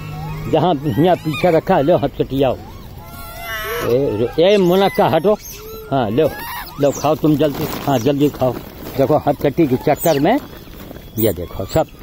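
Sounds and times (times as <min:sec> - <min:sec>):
monkey squealing: 0:00.0 - 0:12.0
monkeys squabbling: 0:00.0 - 0:12.0.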